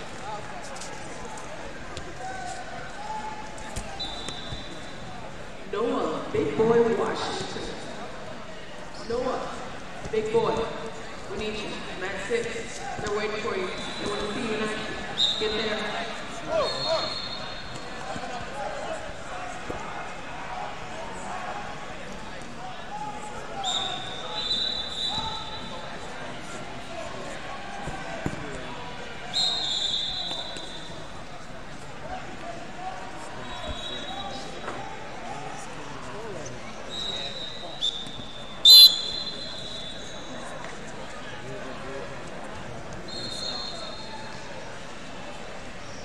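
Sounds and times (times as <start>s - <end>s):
crowd shouting and chatter: 0.0s - 46.0s
referee whistle blasts: 4.0s - 4.9s, 15.1s - 15.7s, 16.5s - 17.6s, 23.6s - 25.7s, 29.3s - 30.9s, 33.4s - 34.5s, 36.9s - 40.4s, 43.1s - 44.1s.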